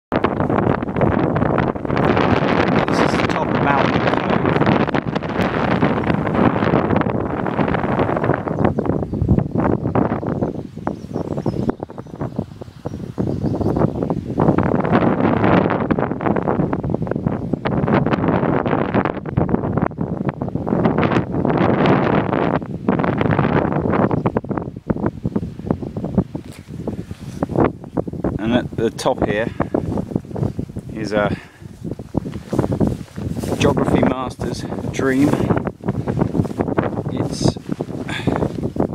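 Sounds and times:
wind gusting on microphone: 0:00.1 - 0:38.9.

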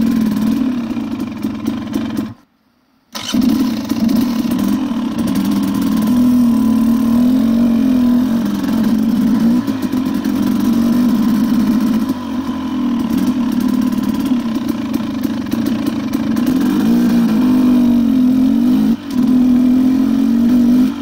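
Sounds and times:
dirt bike engine revving: 0:00.0 - 0:02.4, 0:03.1 - 0:21.0.

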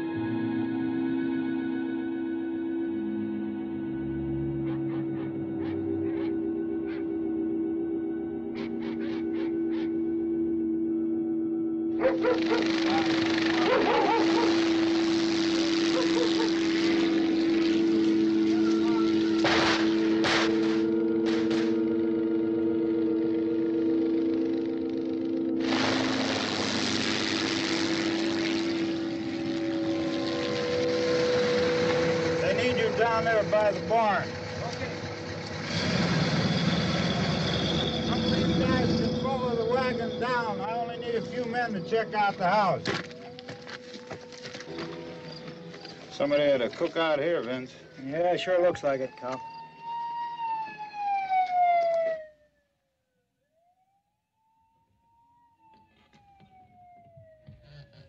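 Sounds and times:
film score held notes: 0:00.0 - 0:58.0
car engine approaching: 0:12.0 - 0:43.2.

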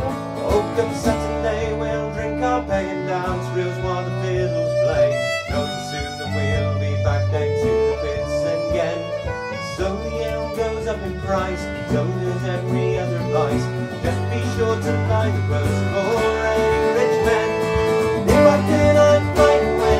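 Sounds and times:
fiddle playing: 0:00.0 - 0:19.9
person singing: 0:00.0 - 0:19.9
plucked string instrument: 0:00.0 - 0:19.9
strummed acoustic guitar: 0:00.0 - 0:19.9.

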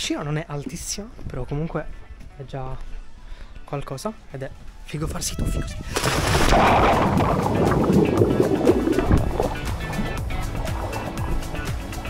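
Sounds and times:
splash into pool: 0:05.9 - 0:10.2
water churning and sloshing: 0:05.9 - 0:12.0
music with steady beat: 0:07.2 - 0:12.0.

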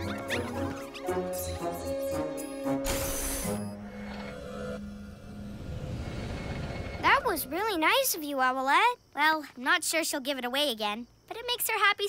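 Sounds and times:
cartoon background music: 0:00.0 - 0:04.8
whoosh: 0:04.8 - 0:07.8.

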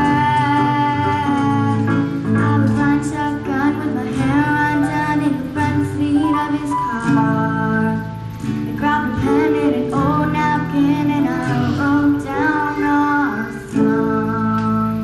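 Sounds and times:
girl singing pop song: 0:00.0 - 0:15.0
keyboard accompaniment: 0:00.0 - 0:15.0
strummed acoustic guitar: 0:00.0 - 0:15.0.

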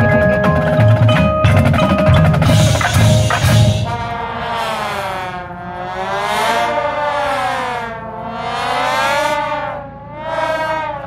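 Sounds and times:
marching show band playing: 0:00.0 - 0:06.4
siren sound effect wailing: 0:00.0 - 0:11.0.

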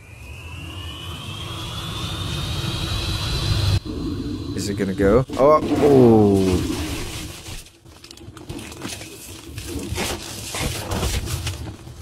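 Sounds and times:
thin rising whistle: 0:00.0 - 0:04.5.

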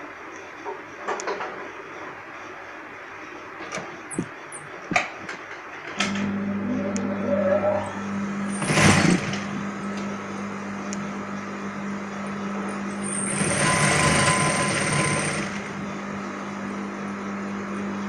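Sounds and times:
sewing machine running: 0:08.5 - 0:09.6, 0:12.9 - 0:15.8.

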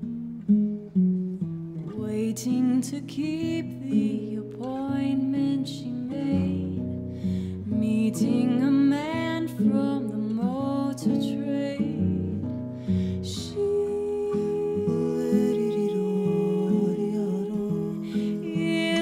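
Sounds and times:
classical guitar: 0:00.0 - 0:19.0
woman singing gently: 0:01.9 - 0:06.8, 0:07.7 - 0:12.6, 0:13.2 - 0:19.0.

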